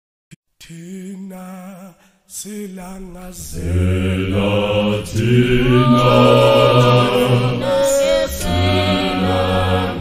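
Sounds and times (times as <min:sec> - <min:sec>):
choir singing a cappella: 0:02.4 - 0:10.0.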